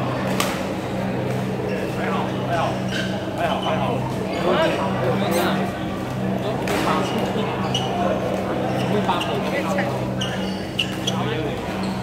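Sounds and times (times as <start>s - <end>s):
steady low hum: 0.0s - 12.0s
voices: 0.9s - 12.0s
short high squeaks: 10.2s - 12.0s.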